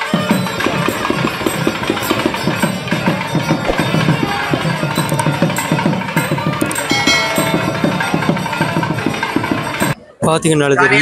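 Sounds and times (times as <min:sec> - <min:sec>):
temple music with fast drumming: 0:00.0 - 0:10.0.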